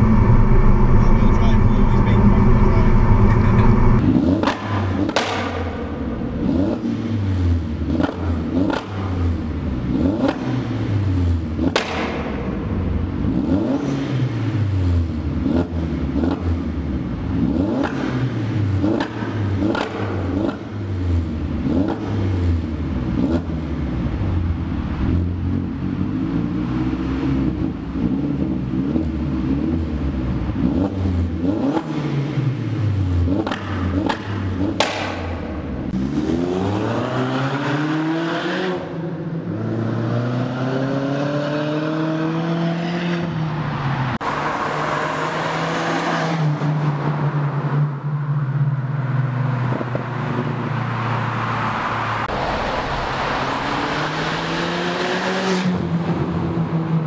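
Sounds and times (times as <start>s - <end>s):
exhaust crack: 0.0s - 6.5s, 11.5s - 13.4s, 33.3s - 36.1s
car engine revving: 0.0s - 47.8s, 49.2s - 56.6s.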